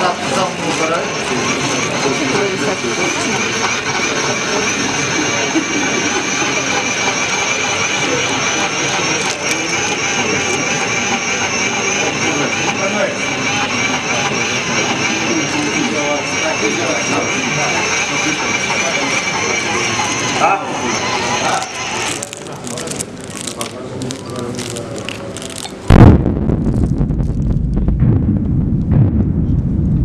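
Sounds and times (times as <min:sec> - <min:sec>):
low murmured voices: 0:00.0 - 0:25.9
machinery whine: 0:00.0 - 0:30.0.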